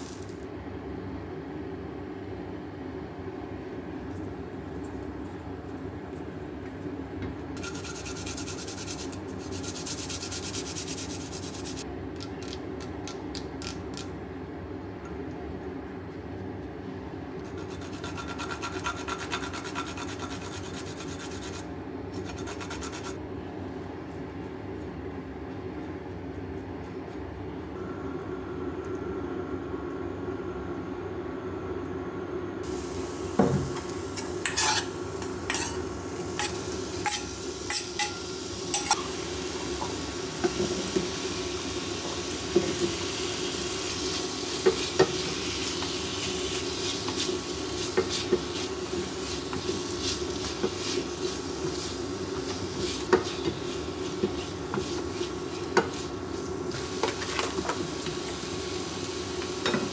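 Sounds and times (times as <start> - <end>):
food sizzling in frying pan: 0.0 - 0.4, 32.6 - 59.9
ginger grated on metal grater: 7.6 - 11.8, 17.5 - 21.6.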